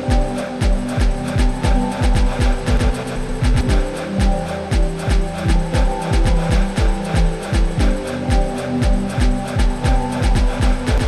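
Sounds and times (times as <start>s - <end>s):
held synth chords: 0.0s - 11.0s
hi-hat ticks: 0.0s - 11.0s.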